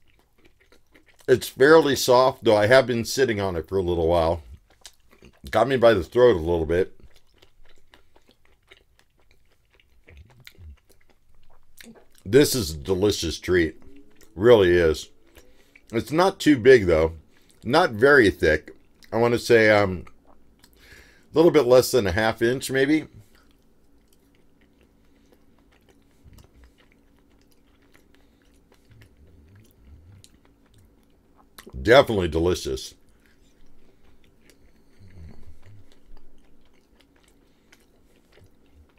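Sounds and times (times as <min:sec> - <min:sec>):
person chewing: 0:00.0 - 0:02.5, 0:03.3 - 0:19.3, 0:19.9 - 0:21.3, 0:23.0 - 0:38.9
faint steady hum: 0:00.0 - 0:38.9
faint low mouth sounds: 0:10.0 - 0:16.0, 0:26.0 - 0:31.8, 0:32.9 - 0:36.6.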